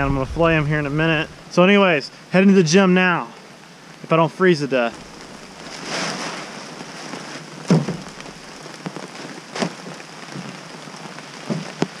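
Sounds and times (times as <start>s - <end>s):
steady rain falling: 0.0s - 12.0s
tarp rustling: 4.8s - 12.0s
sharp knocks: 7.7s - 8.1s.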